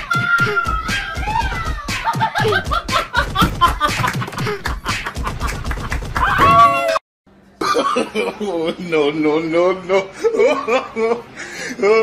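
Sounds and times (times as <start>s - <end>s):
person laughing hard: 2.0s - 6.8s.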